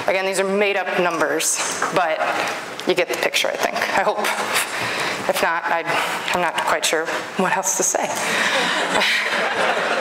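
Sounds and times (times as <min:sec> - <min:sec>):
speech: 0:00.1 - 0:04.6, 0:05.3 - 0:08.2
audience laughing: 0:08.5 - 0:10.0.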